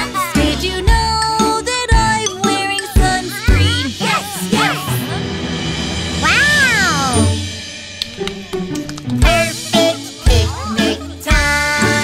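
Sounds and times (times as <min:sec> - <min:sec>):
children's song backing music: 0:00.0 - 0:12.0.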